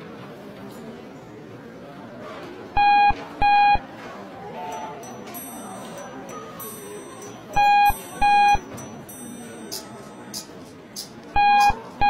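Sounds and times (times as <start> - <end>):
lift alarm beeping: 7.5 - 8.7, 11.4 - 11.8.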